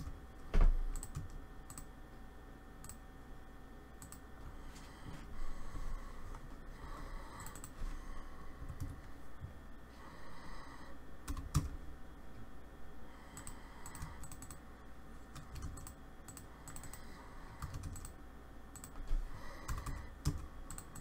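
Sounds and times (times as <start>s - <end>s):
faint hum: 0.0s - 21.0s
keyboard and mouse clicking: 0.9s - 1.9s, 4.0s - 4.2s, 7.4s - 7.8s, 11.2s - 11.8s, 13.4s - 14.6s, 15.3s - 21.0s.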